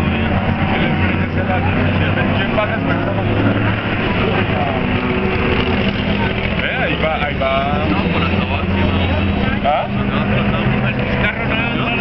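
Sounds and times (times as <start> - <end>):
car engines running: 0.0 - 12.0
people talking: 0.0 - 12.0.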